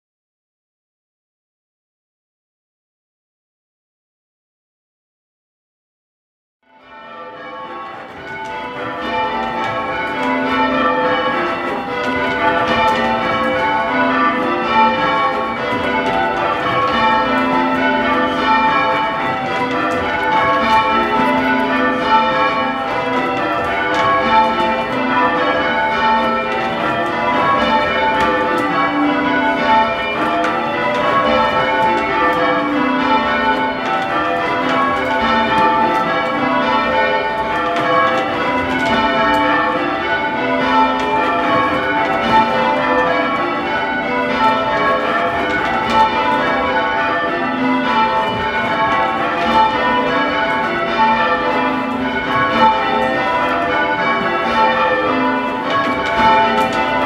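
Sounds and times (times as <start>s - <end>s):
church bells ringing: 6.7s - 57.0s.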